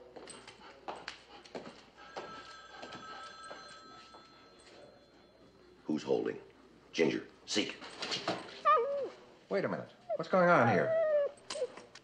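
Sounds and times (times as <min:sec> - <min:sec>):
footsteps on hard floor: 0:00.1 - 0:04.3
telephone bell ringing: 0:02.1 - 0:05.4.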